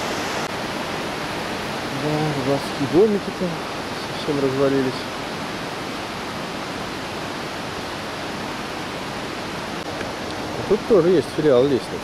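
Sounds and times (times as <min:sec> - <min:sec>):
flowing water rushing: 0:00.0 - 0:12.0.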